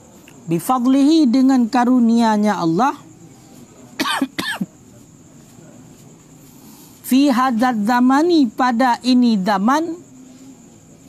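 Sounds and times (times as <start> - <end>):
man coughing: 4.0 - 4.7.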